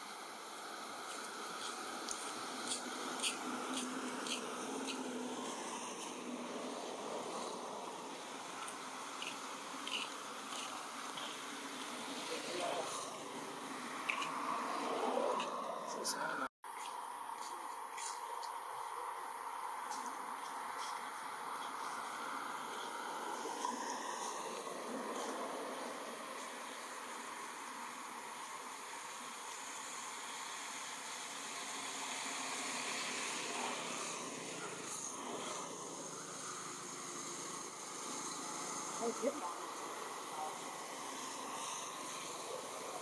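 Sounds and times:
forest background hiss: 0:00.0 - 0:43.0
faint high insect tones: 0:16.7 - 0:43.0.

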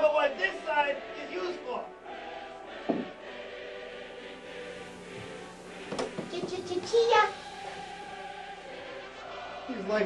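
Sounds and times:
choir holding sustained chords: 0:00.0 - 0:10.0.

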